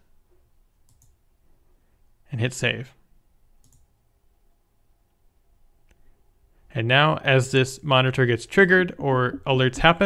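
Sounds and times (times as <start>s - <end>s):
faint computer mouse clicks: 0.8s - 1.2s, 3.6s - 3.8s.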